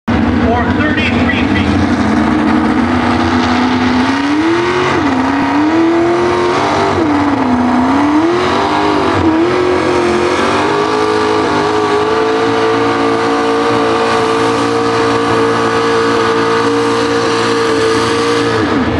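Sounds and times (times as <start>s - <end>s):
truck engine at full throttle: 0.1s - 18.9s.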